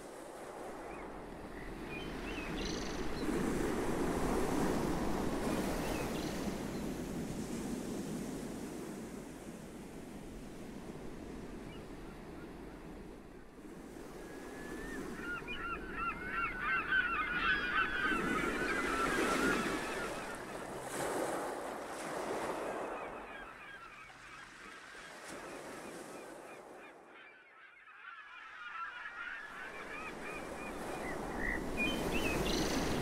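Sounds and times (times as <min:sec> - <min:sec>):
surf: 0:14.2 - 0:27.2
flock of birds calling: 0:14.7 - 0:21.0.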